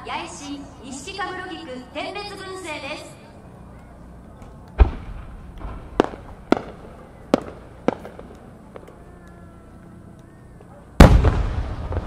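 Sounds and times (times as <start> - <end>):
fireworks bangs: 4.8 - 8.9, 11.0 - 12.0.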